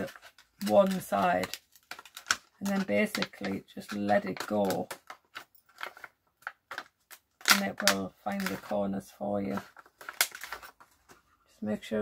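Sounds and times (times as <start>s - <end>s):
plastic strip clicks and crinkles: 0.0s - 8.8s, 9.6s - 10.9s.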